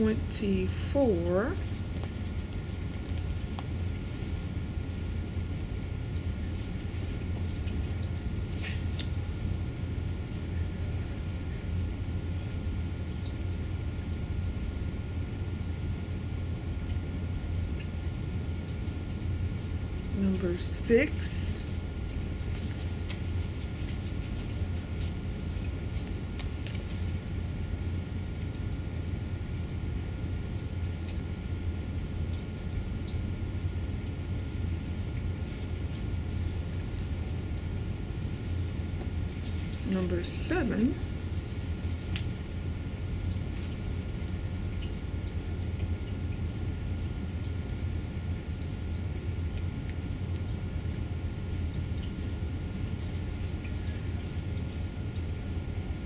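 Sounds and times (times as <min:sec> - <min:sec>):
low room hum: 0:00.0 - 0:56.0
faint paper rustling: 0:01.5 - 0:04.6, 0:06.3 - 0:09.4, 0:21.6 - 0:27.4, 0:38.1 - 0:42.4, 0:43.2 - 0:44.4
paper sticker being peeled: 0:07.4 - 0:09.3.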